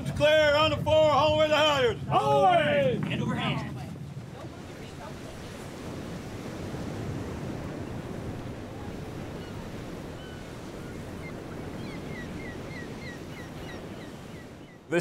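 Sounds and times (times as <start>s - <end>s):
water noise: 0.0s - 15.0s
wind: 0.0s - 15.0s.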